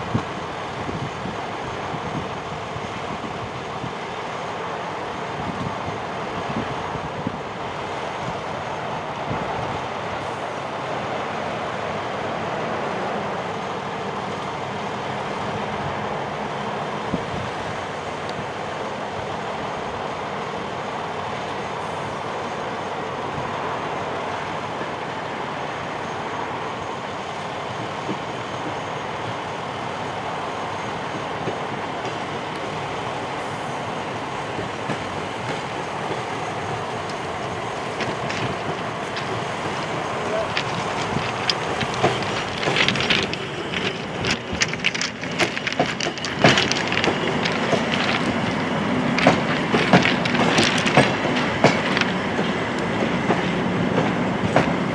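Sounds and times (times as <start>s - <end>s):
locomotive engine running: 35.0s - 54.9s.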